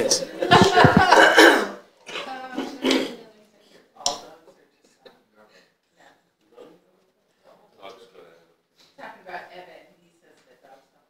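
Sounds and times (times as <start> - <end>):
person coughing: 0.9 - 1.8.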